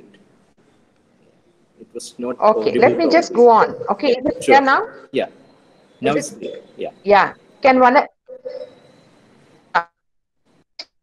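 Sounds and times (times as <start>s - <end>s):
thin steady high tone: 1.4s - 9.8s.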